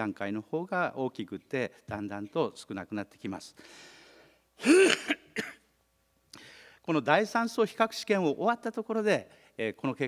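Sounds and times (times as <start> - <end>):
faint breath in: 3.6 - 4.5, 6.4 - 6.8
man clearing throat: 4.6 - 5.6.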